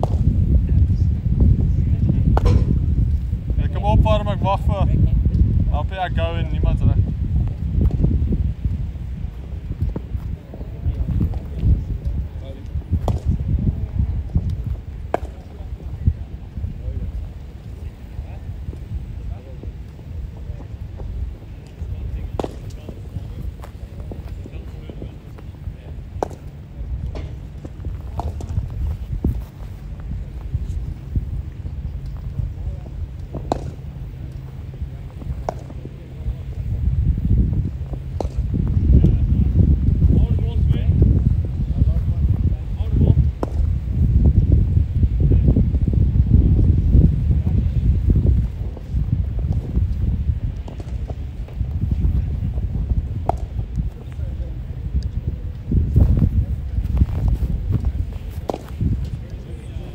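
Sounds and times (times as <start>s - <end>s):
wind rumbling on microphone: 0.0s - 59.9s
sharp knocks: 2.4s - 2.8s
faint voices: 8.9s - 43.4s, 50.2s - 59.9s.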